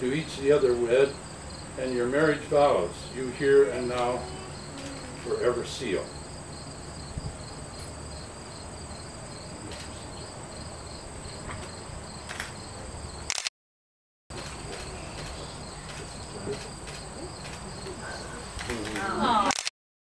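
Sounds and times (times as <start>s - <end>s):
crickets chirring: 0.0s - 13.4s, 14.3s - 19.5s.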